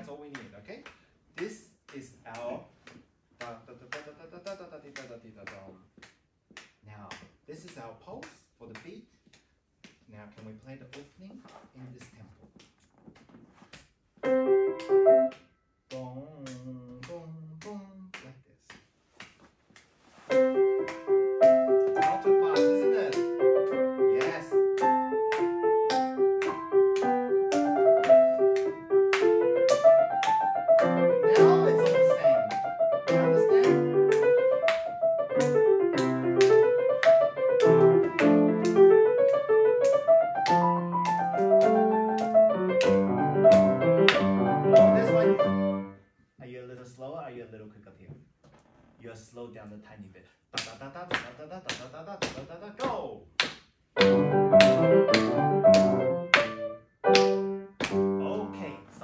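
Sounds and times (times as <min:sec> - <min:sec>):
grand piano playing: 0:14.2 - 0:15.4, 0:20.3 - 0:46.0, 0:54.0 - 0:58.8.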